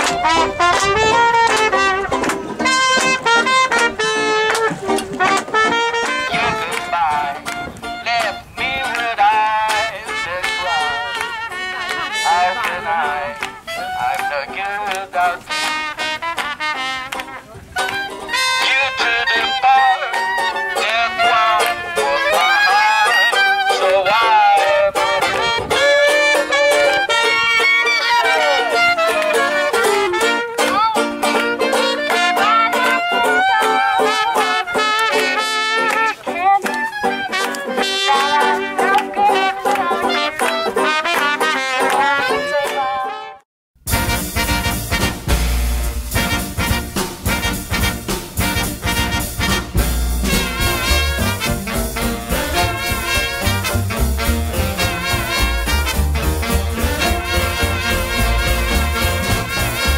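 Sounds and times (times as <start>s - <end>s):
swing band music: 0.0s - 59.9s.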